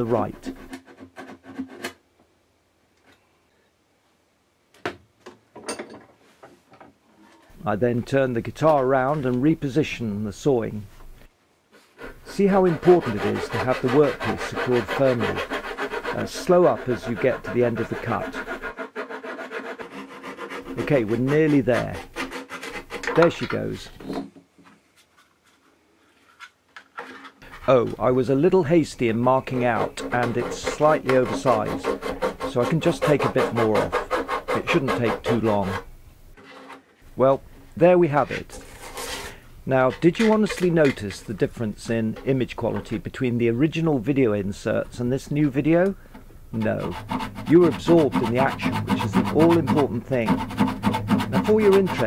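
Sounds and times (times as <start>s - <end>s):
fret saw cutting wood: 12.0s - 23.6s, 28.4s - 36.8s, 46.6s - 52.0s.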